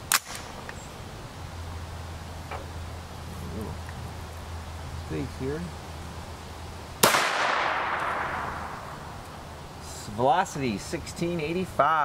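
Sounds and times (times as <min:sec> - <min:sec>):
gunshot with echo: 0:07.0 - 0:08.9.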